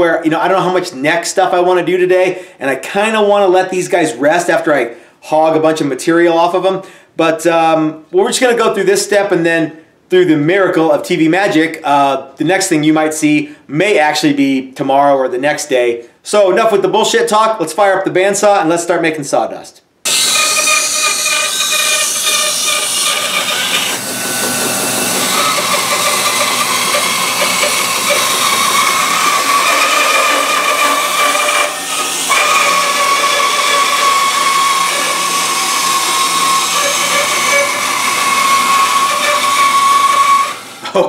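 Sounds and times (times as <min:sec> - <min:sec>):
bandsaw cutting wood: 0:20.1 - 0:41.0.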